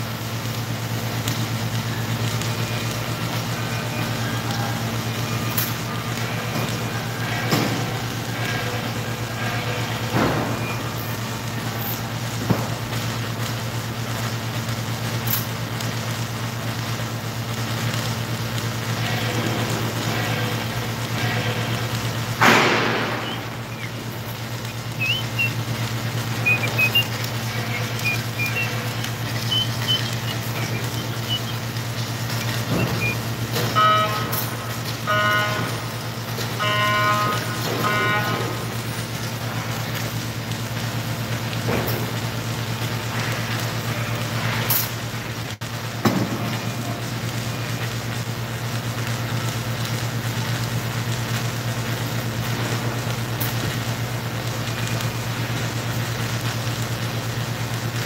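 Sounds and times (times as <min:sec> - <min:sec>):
welding machine electrical hum: 0:00.0 - 0:58.0
welding clicks and pops: 0:00.4 - 0:06.8, 0:10.0 - 0:36.6, 0:45.8 - 0:58.0.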